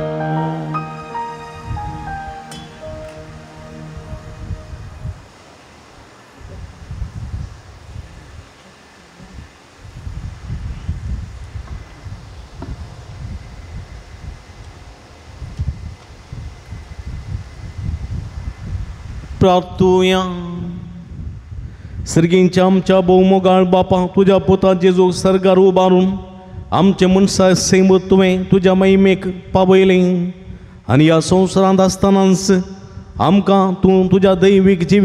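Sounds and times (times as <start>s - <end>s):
hymn singing: 0.0s - 5.8s
wind buffeting microphone: 4.1s - 5.4s, 6.4s - 8.6s, 9.2s - 24.6s, 32.7s - 33.4s.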